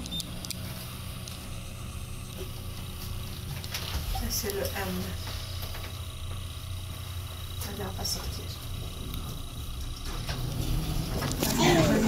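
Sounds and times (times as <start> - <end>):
elevator hum: 0.0 - 12.0.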